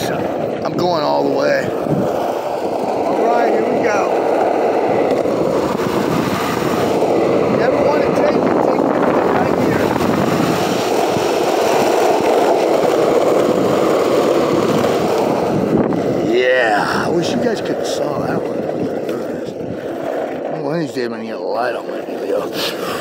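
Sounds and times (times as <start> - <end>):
skateboard wheels rolling on asphalt: 0.0 - 23.0.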